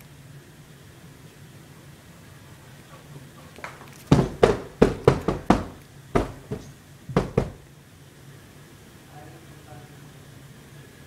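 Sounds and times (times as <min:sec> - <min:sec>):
sharp knocks: 0:04.0 - 0:07.6.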